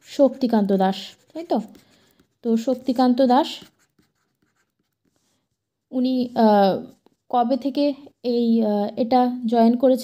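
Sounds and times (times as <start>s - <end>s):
woman speaking: 0.0s - 1.8s, 2.4s - 3.8s, 5.9s - 10.0s
stylus scratching on tablet: 0.0s - 5.4s.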